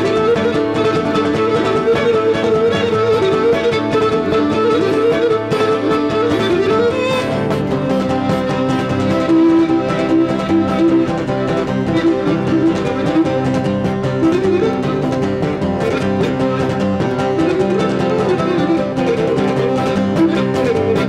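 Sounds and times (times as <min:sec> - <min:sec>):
acoustic guitar: 0:00.0 - 0:21.0
lutes strumming: 0:00.0 - 0:21.0
lyra playing a dance tune: 0:00.0 - 0:21.0.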